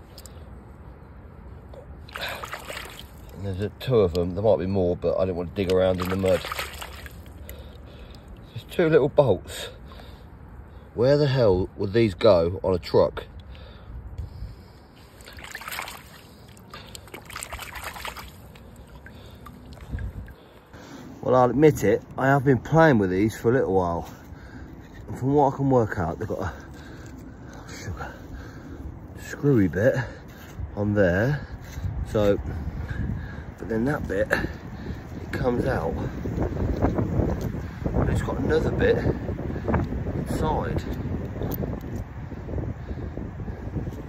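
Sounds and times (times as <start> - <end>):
water sloshing and splashing: 1.8 - 3.4, 5.5 - 8.6, 15.0 - 20.7.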